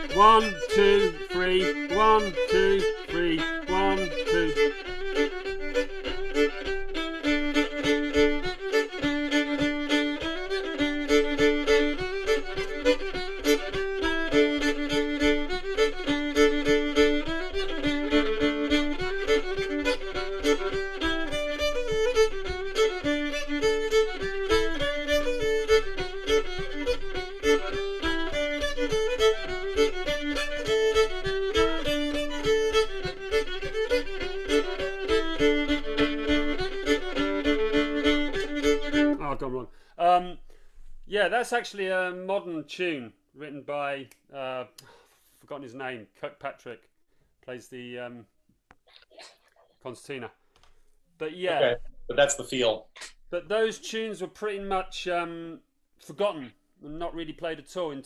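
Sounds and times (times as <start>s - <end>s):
fiddle playing a hornpipe: 0.0s - 40.3s.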